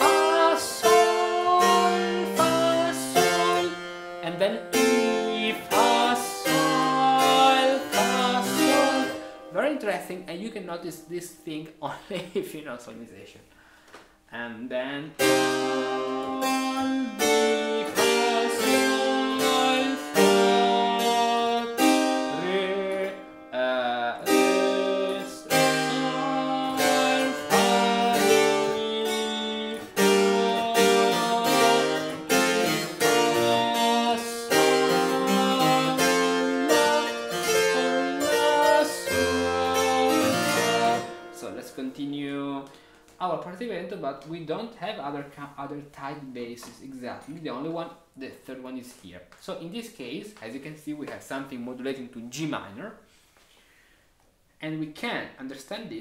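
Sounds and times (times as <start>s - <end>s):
harpsichord playing chords: 0.0s - 11.4s, 15.2s - 42.2s.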